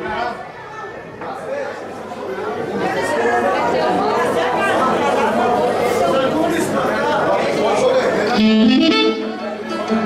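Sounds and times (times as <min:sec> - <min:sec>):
overlapping chatter in a hall: 0:00.0 - 0:10.0.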